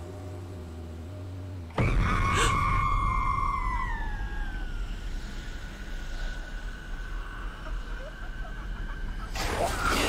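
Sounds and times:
eerie high tone sliding down: 1.8s - 9.3s.

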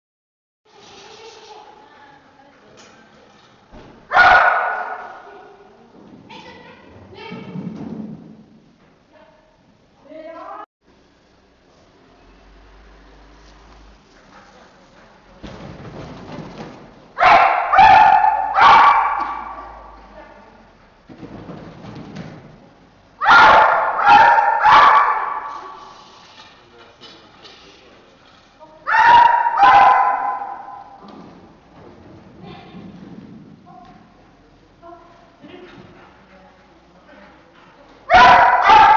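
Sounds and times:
dog barking in a hall: 4.1s - 5.7s, 17.2s - 20.2s, 23.2s - 26.0s, 28.8s - 31.4s, 38.0s - 38.9s.

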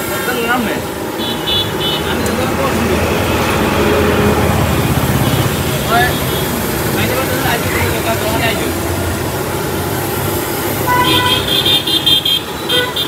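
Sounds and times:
voices talking: 0.0s - 12.6s
passing vehicles engine rumble: 0.0s - 13.0s.

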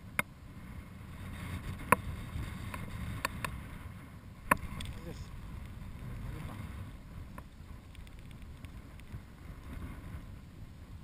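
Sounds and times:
wind on microphone: 0.0s - 11.0s.

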